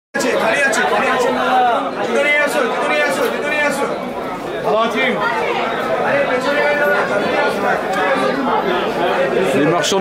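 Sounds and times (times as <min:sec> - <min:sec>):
chatter of people talking: 0:00.2 - 0:10.0.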